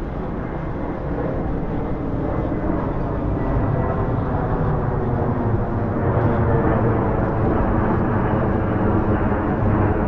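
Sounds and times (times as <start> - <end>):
distant city traffic rumble: 0.0 - 10.0.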